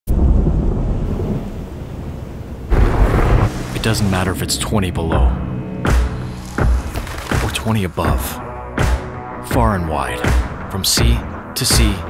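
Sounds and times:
deep thunder rumble: 0.1 - 5.9.

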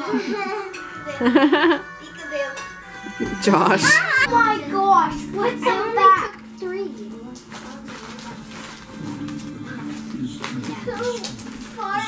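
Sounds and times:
background music with held notes: 0.0 - 12.0
plastic chip bag crinkling: 6.6 - 12.0.

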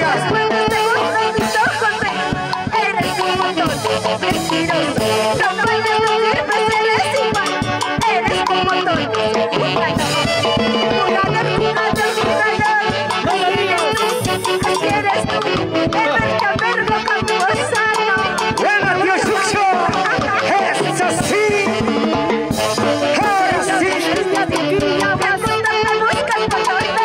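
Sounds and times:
woman singing into a microphone: 0.0 - 22.1, 22.9 - 27.0
upbeat latin dance music: 0.0 - 27.0.

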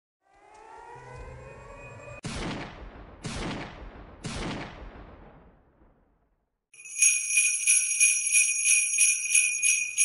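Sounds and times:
rising chord riser: 0.2 - 2.2.

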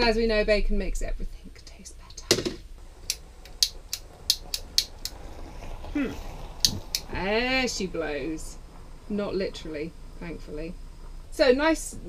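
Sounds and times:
lighter clicking: 3.1 - 5.2, 6.6 - 7.1.

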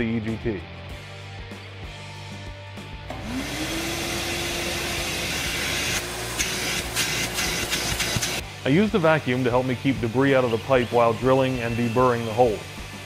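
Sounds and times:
vacuum motor whining: 3.1 - 8.4.

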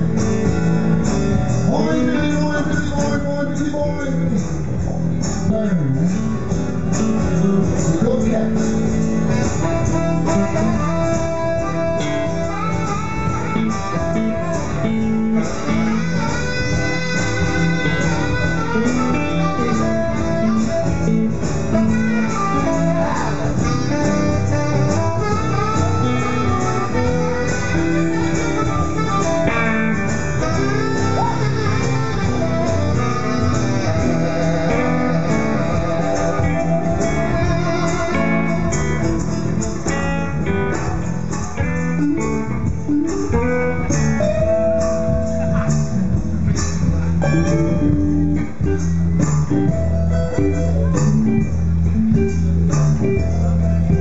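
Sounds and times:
electric guitar: 0.0 - 54.0
saxophone playing: 9.3 - 41.0.

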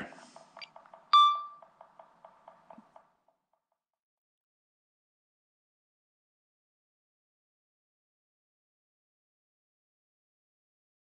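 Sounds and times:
short electronic beep: 1.1 - 1.6.

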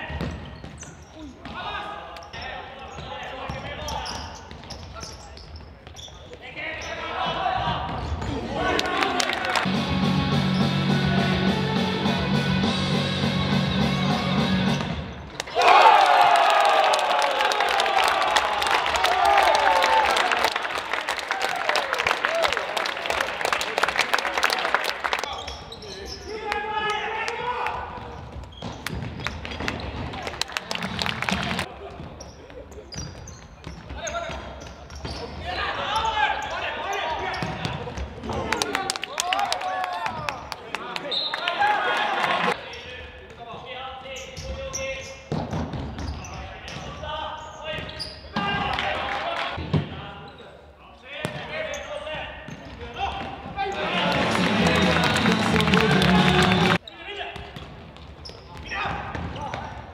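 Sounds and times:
players shouting: 6.9 - 10.0, 15.4 - 22.7, 41.4 - 42.6, 53.6 - 56.8.

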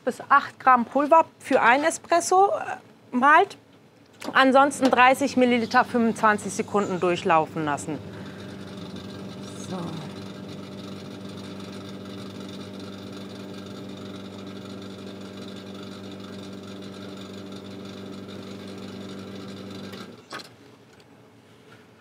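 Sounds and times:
espresso machine pump humming: 4.6 - 20.2.

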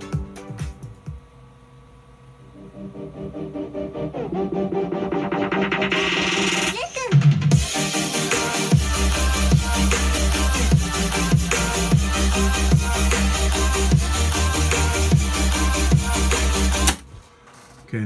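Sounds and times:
electronic dance music: 2.6 - 17.0.

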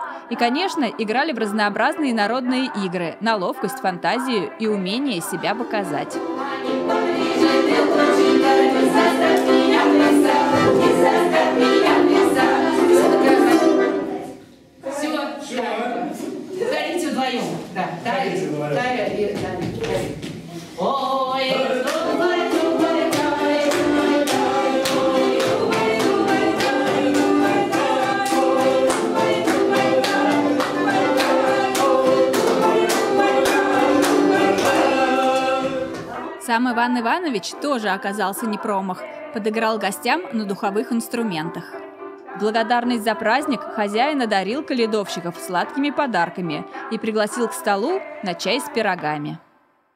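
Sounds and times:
group of voices singing folk song: 0.0 - 16.9, 18.0 - 49.4
accordion: 1.6 - 14.4, 21.5 - 36.4
hands clapping on the beat: 8.4 - 12.2, 21.5 - 36.2.

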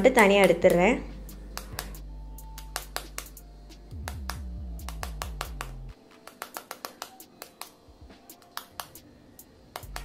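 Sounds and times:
knife tapping on eggshell: 6.3 - 7.7.

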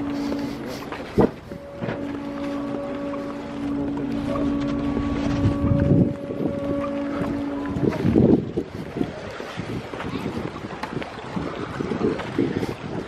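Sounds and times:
boat engine running: 0.0 - 13.0
wind buffeting microphone: 0.0 - 13.0.

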